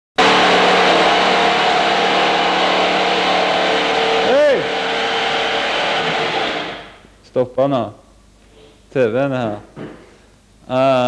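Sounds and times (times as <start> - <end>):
motor whirring: 0.2 - 7.0.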